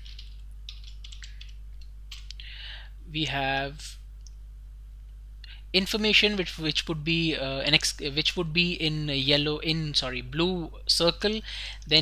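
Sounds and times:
keyboard key presses: 0:00.0 - 0:02.2
steady low hum: 0:00.0 - 0:12.0.

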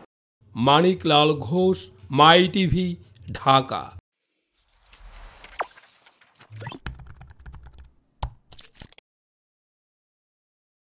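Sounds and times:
computer keyboard typing: 0:06.7 - 0:09.0.

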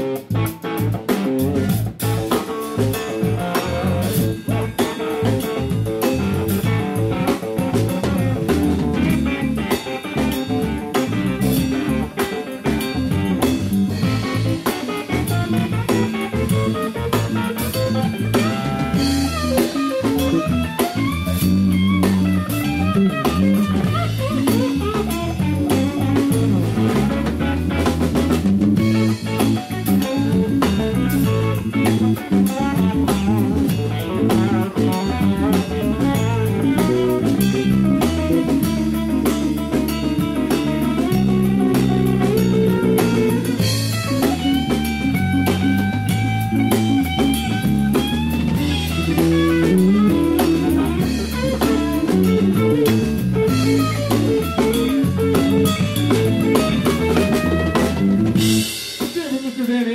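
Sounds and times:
blues band playing: 0:00.0 - 0:59.9
guitar notes bending: 0:00.0 - 0:59.9.

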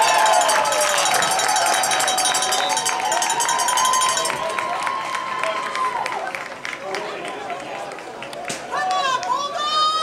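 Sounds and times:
spectators yelling: 0:00.0 - 0:06.5
crowd noise: 0:00.0 - 0:10.0.

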